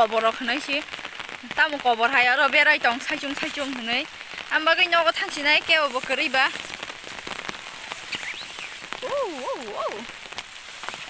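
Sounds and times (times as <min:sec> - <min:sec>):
rain on an umbrella: 0:00.0 - 0:11.0.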